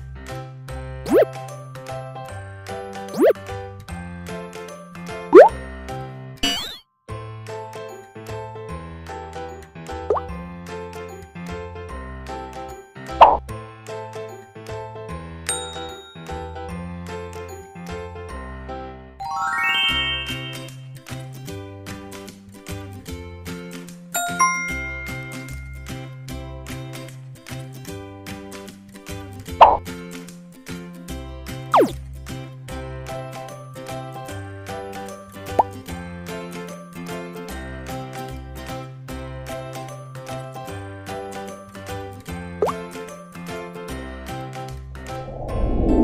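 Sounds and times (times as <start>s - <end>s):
cartoon pop sound effect: 1.0s - 1.4s, 3.1s - 3.4s, 5.3s - 5.6s, 6.4s - 6.8s, 10.1s - 10.3s, 13.2s - 13.4s, 29.6s - 29.8s, 31.7s - 32.0s, 42.6s - 42.8s
rising plop sound effect: 1.1s - 1.3s, 31.8s - 32.0s
light background music: 7.5s - 44.9s.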